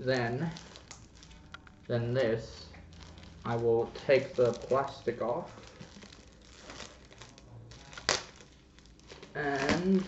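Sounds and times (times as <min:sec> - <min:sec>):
plastic wrap crinkling: 0:00.0 - 0:10.0
sharp plastic crackle: 0:00.0 - 0:10.0.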